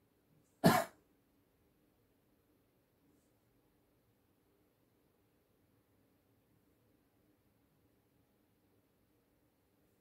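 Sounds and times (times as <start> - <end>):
man coughing: 0.6 - 1.0.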